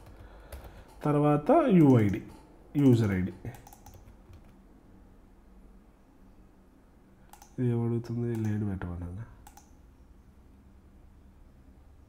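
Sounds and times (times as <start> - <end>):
man speaking: 1.0 - 3.6, 7.6 - 9.4
computer clicks: 1.7 - 4.6, 7.3 - 8.7, 9.4 - 9.8.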